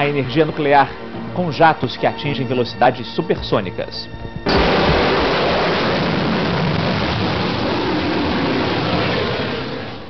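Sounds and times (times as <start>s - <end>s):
jet engines roaring: 4.5s - 10.0s.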